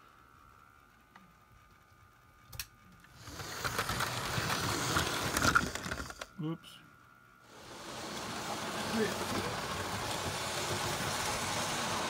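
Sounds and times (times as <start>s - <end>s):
model train running on rails: 3.2s - 6.2s, 7.5s - 12.0s.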